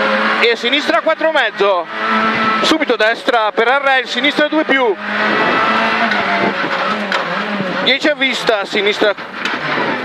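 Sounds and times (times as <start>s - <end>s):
rally car engine running hard: 0.0s - 10.0s
road and cabin noise: 0.0s - 10.0s.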